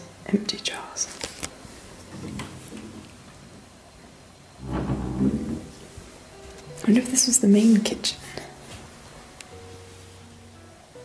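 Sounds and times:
person whispering: 0.4s - 1.2s.

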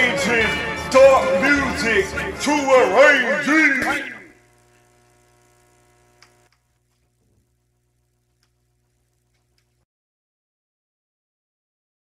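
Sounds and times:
faint electrical hum: 3.4s - 9.8s.

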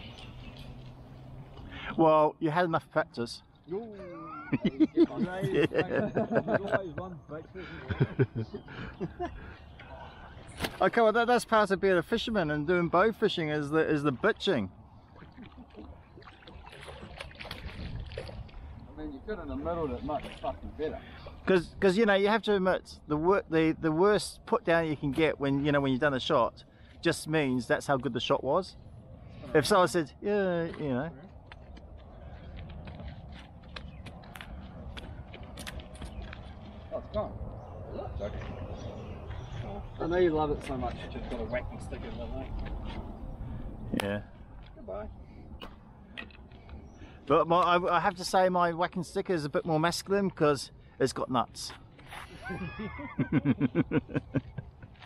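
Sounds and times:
faint outdoor background noise: 0.0s - 55.0s
water splashing and sloshing: 9.4s - 11.0s, 14.0s - 21.5s
wind rumbling on microphone: 14.7s - 21.8s, 31.3s - 47.0s
light clicks on gravel: 30.6s - 36.9s.

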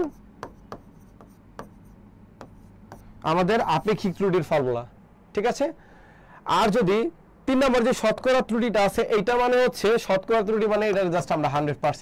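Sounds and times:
marker pen writing on a board: 0.0s - 3.3s
marker tip ticking on board: 0.4s - 1.8s, 2.4s - 3.1s.

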